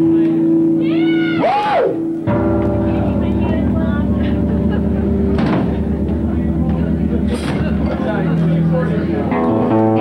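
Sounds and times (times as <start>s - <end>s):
rock band droning chord: 2.0s - 10.0s.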